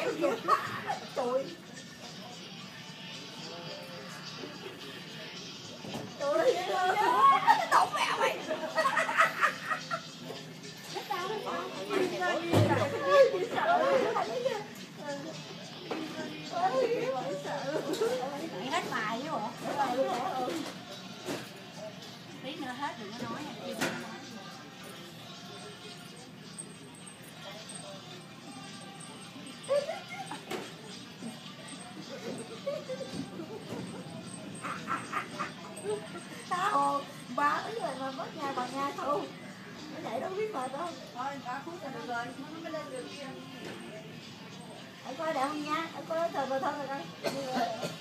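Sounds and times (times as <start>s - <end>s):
background music: 0.0s - 48.0s
child and adults talking: 0.0s - 48.0s
faint background voices: 0.0s - 48.0s.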